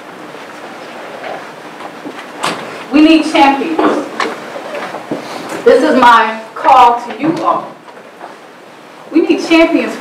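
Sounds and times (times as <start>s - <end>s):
lecture hall room noise and hiss: 0.0s - 10.0s.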